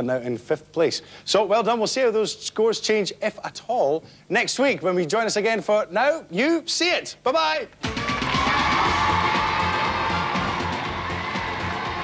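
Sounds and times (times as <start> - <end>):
audience cheering and whooping: 7.8 - 12.0
game show theme music: 7.8 - 12.0.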